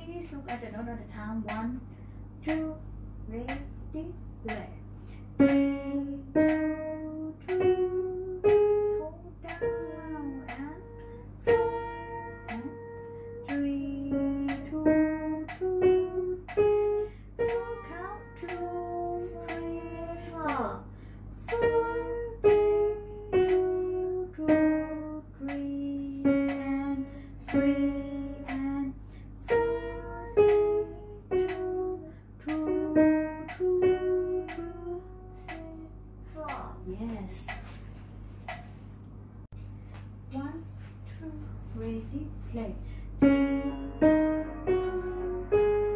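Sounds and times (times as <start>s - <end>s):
simple piano melody: 2.4s - 37.0s, 42.3s - 45.9s.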